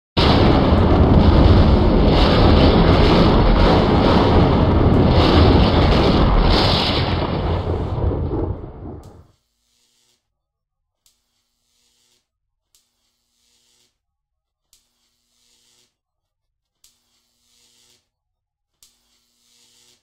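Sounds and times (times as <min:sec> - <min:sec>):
rumbling and crackling: 0:00.2 - 0:09.3.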